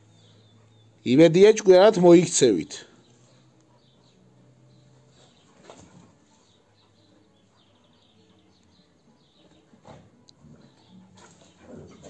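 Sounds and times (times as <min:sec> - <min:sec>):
birds chirping: 0:00.0 - 0:12.0
dogs scuffling in dirt: 0:05.1 - 0:06.6, 0:09.4 - 0:12.0.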